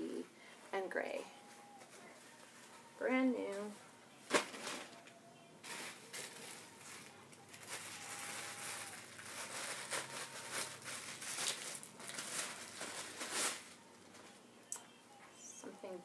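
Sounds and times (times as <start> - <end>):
plastic bag crinkling: 4.3 - 14.3.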